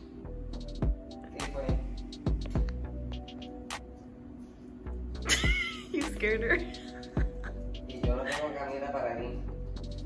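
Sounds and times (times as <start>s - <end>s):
music with low drum beat: 0.0s - 3.8s, 4.9s - 8.5s.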